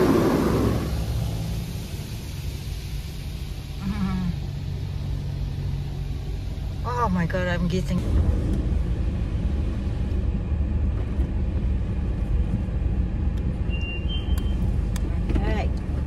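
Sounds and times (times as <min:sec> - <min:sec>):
car wash machinery rumble: 0:00.0 - 0:16.0.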